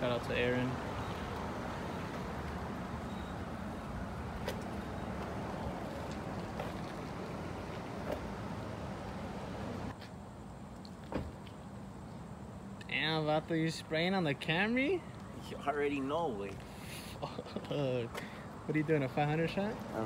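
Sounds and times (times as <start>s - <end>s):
outdoor background: 0.0s - 20.0s.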